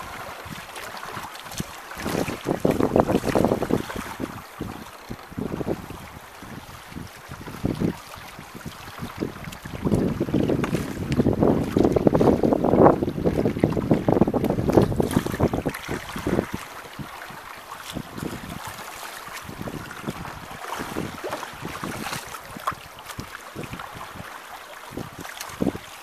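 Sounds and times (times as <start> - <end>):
water splashing against hull: 0.0 - 26.0
wind buffeting microphone: 0.0 - 26.0.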